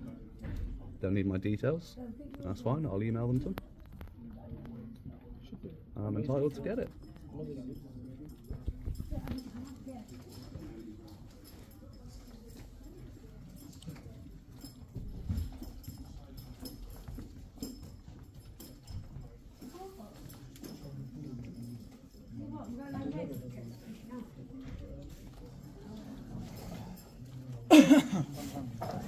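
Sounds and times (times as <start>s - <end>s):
faint indistinct voices: 0.0s - 29.0s.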